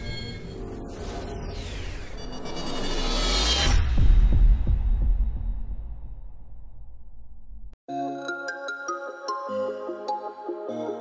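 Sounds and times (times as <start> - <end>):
deep sub-bass boom throbbing: 3.8 - 7.7.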